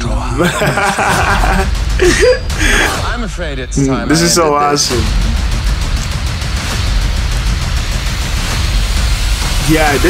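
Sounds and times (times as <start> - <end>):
trailer music with heavy bass: 0.0 - 10.0.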